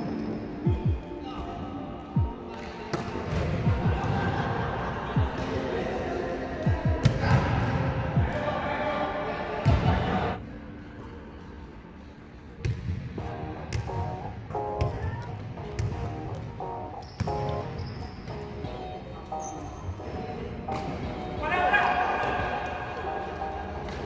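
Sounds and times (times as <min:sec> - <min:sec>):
music: 0:00.0 - 0:24.0
players' voices: 0:01.1 - 0:11.4.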